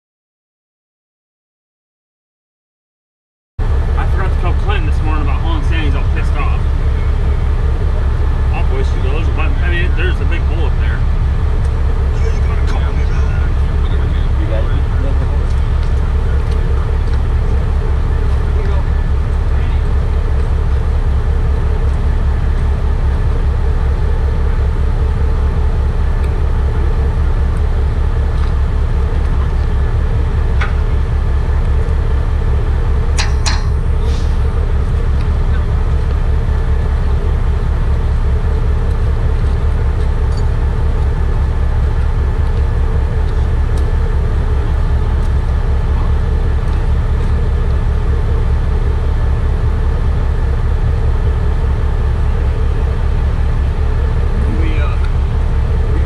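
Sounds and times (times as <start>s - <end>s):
heavy truck engine idling: 3.6s - 56.0s.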